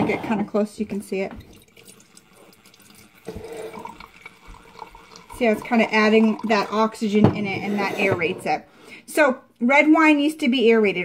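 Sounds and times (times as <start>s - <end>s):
wine pouring into glass: 1.4s - 8.2s.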